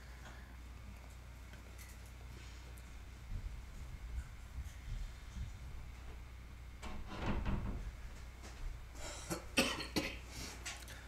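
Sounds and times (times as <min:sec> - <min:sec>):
person coughing: 0:09.0 - 0:10.3.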